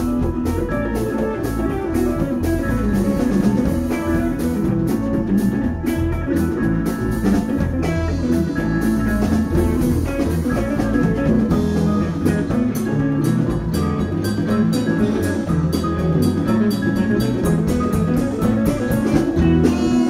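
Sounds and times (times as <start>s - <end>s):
bass: 0.0s - 20.0s
drum kit steady beat: 0.0s - 20.0s
electric guitars: 0.0s - 20.0s.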